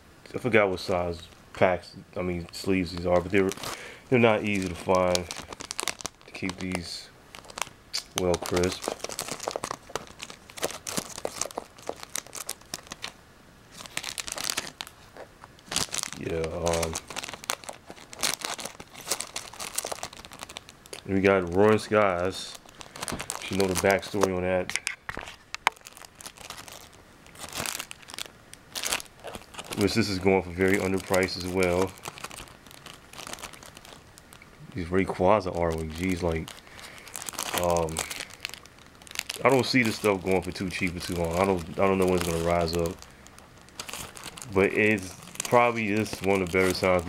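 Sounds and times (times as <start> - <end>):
plastic sleeves crinkling and clicking: 2.4 - 47.0.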